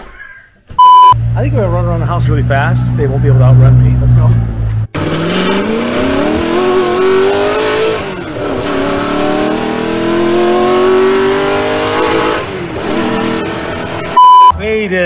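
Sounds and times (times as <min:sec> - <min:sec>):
race car engine accelerating: 0:01.2 - 0:14.5.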